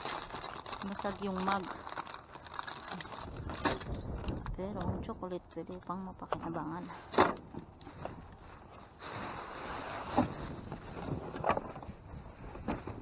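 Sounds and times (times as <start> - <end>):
plastic and bubble wrap rustling: 0.0 - 13.0.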